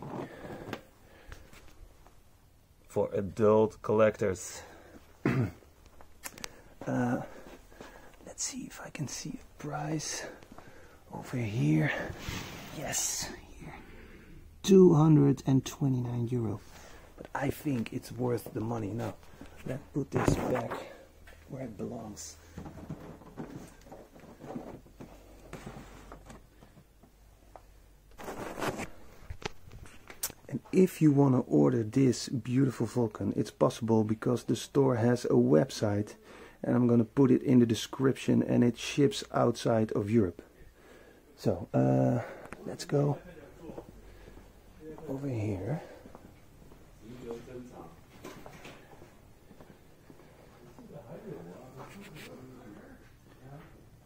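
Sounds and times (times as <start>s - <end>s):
scraping rustle: 28.2s - 30.0s.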